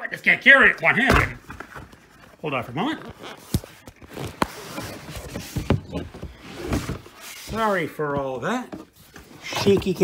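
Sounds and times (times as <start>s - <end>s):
rubbing and rustling: 1.7s - 10.0s.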